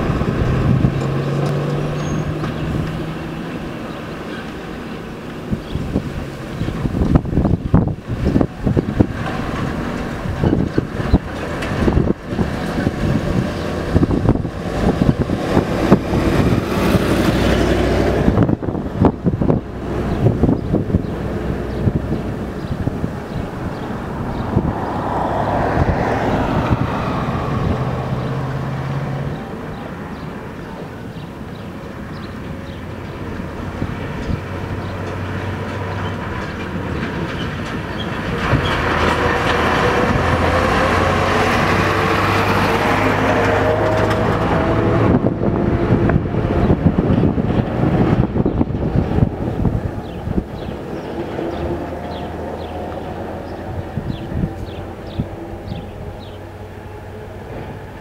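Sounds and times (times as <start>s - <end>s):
diesel truck engines: 0.0s - 58.0s
truck bodies rattling and banging: 0.0s - 58.0s.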